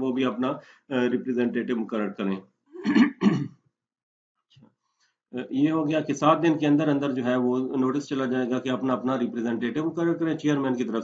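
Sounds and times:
man clearing his throat: 0:02.8 - 0:03.6.

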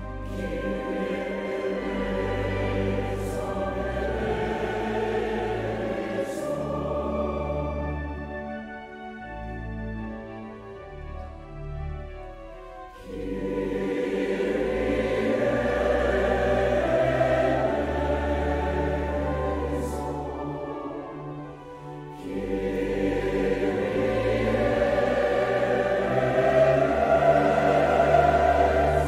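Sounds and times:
mixed choir singing: 0:00.0 - 0:08.4, 0:13.0 - 0:29.0
organ bass notes: 0:00.0 - 0:21.4, 0:22.2 - 0:29.0.

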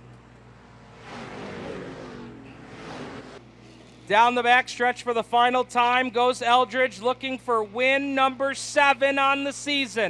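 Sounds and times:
race car engines passing: 0:00.0 - 0:04.1.

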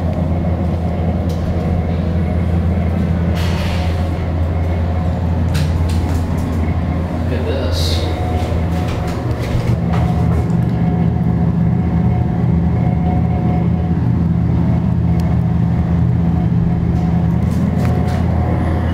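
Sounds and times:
elevator hum: 0:00.0 - 0:18.9.

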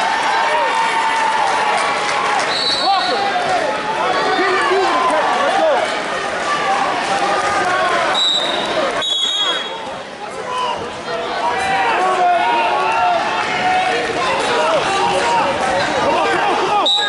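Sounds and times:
crowd shouting: 0:00.0 - 0:17.0.

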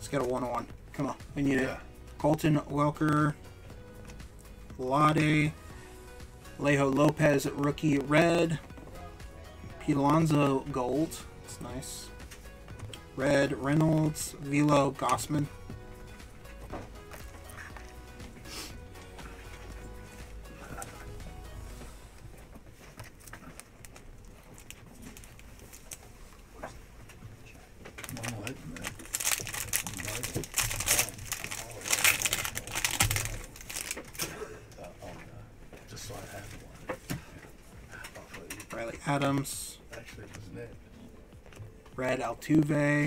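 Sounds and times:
quiet background music: 0:00.0 - 0:43.0
foil wrapper crinkling and tearing: 0:23.0 - 0:26.1, 0:28.0 - 0:34.4.

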